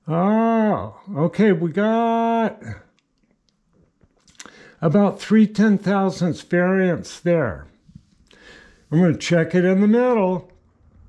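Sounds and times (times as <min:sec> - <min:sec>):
man speaking: 0:00.0 - 0:02.9, 0:04.3 - 0:07.8, 0:08.9 - 0:10.6
mouth noise and breath intake: 0:04.2 - 0:04.8, 0:07.8 - 0:09.0.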